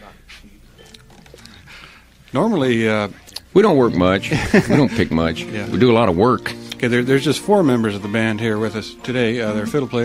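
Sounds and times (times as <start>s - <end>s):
faint room sounds: 0.0s - 10.0s
low tape hum: 0.4s - 10.0s.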